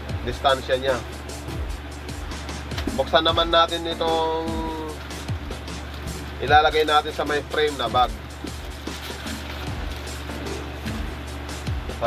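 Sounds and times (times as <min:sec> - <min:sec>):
background music: 0:00.0 - 0:12.0
plastic packaging crinkling: 0:04.7 - 0:11.3.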